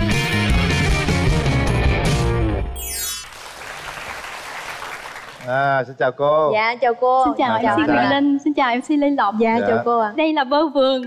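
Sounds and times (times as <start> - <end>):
studio audience applauding: 2.9 - 5.8.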